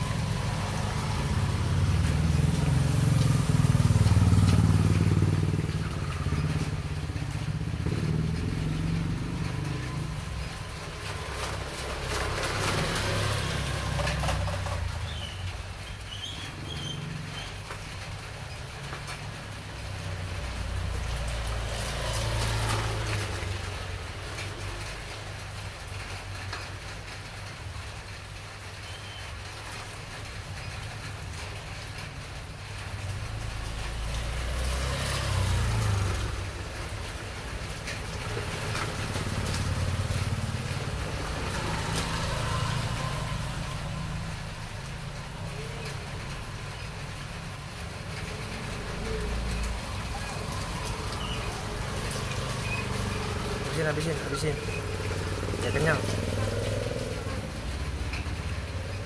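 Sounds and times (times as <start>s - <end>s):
passing traffic rumble: 0.0s - 59.0s.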